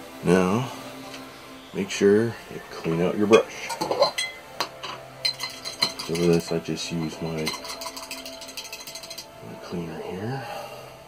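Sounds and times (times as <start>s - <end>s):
paintbrush clinking against jar: 3.3s - 9.4s.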